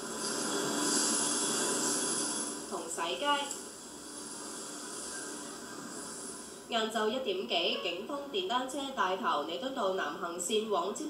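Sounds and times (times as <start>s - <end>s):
rushing street noise: 0.0s - 6.7s
high hiss: 0.0s - 7.5s.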